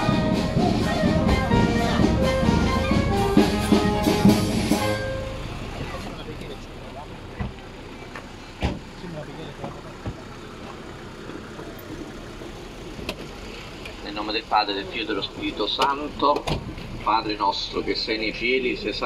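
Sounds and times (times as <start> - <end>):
band music: 0.0 - 8.0
low traffic noise: 0.0 - 19.0
faint voices: 5.2 - 19.0.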